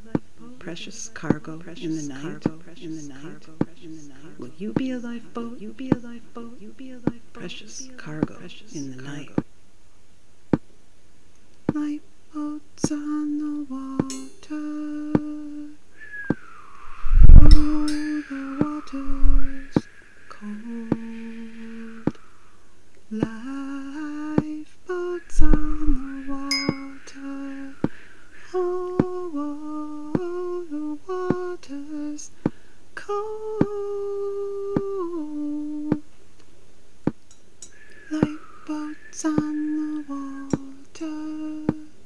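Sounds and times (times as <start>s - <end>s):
person humming a melody: 0.0s - 9.3s, 11.7s - 22.3s, 23.1s - 32.4s, 33.0s - 36.1s, 37.6s - 42.0s
higher wavering tone: 14.1s - 14.8s, 15.4s - 22.7s, 24.9s - 27.9s.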